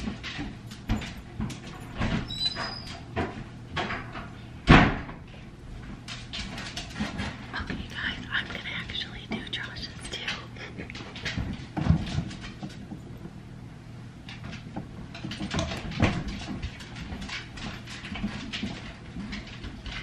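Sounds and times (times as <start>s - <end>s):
loud thump: 4.7s - 5.2s
whispered voices: 7.6s - 11.0s.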